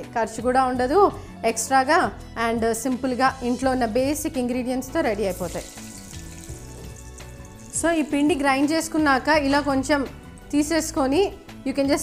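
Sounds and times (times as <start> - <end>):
soft background music: 0.0 - 12.0
oil sizzling in a pan: 5.1 - 9.0.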